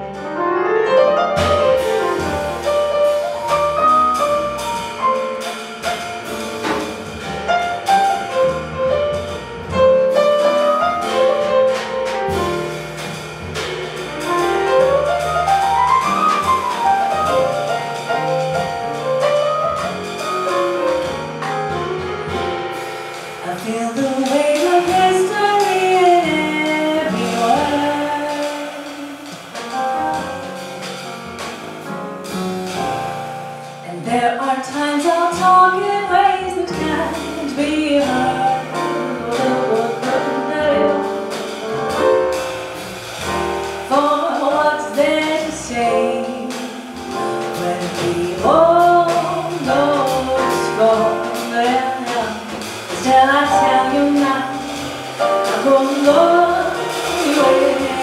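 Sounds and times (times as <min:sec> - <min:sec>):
double bass: 0:00.0 - 0:58.0
drums: 0:00.0 - 0:58.0
piano: 0:00.0 - 0:58.0
woman singing: 0:23.4 - 0:29.1, 0:33.8 - 0:41.2, 0:43.9 - 0:58.0.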